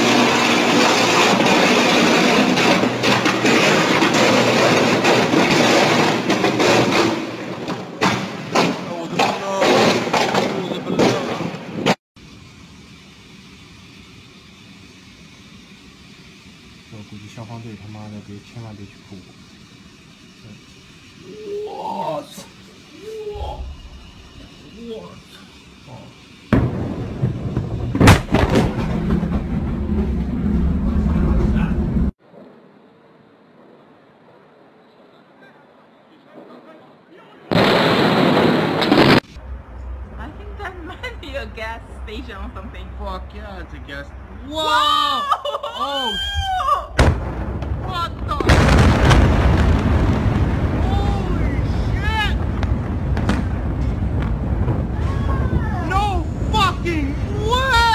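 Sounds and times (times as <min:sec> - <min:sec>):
loud noisy rush: 0:00.0 - 0:08.0, 0:16.6 - 0:32.7, 0:47.9 - 0:57.9
distant city traffic hum: 0:00.0 - 0:57.9
large explosion blast: 0:26.5 - 0:32.1, 0:37.5 - 0:39.3, 0:46.9 - 0:57.8.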